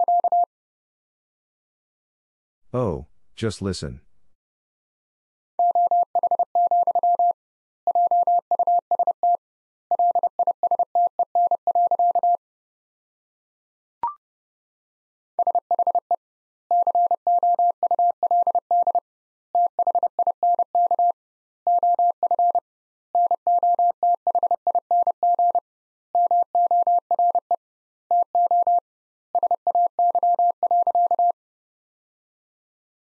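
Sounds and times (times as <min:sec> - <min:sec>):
morse code beeps: 0:00.0 - 0:00.5.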